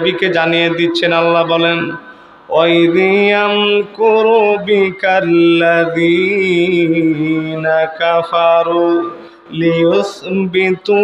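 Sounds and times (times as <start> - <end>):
man chanting through a microphone: 0.0 - 11.0.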